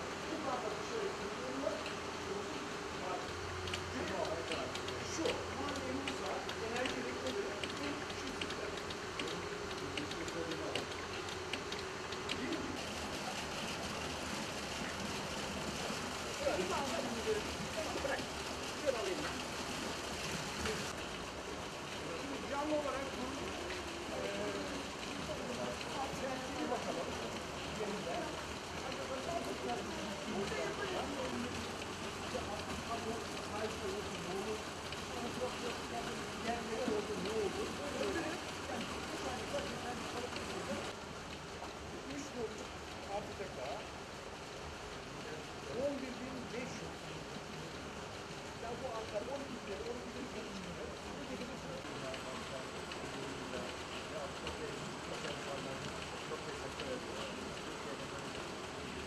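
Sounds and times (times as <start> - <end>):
distant voices talking: 0.0 - 59.0
steady background hiss: 0.0 - 59.0.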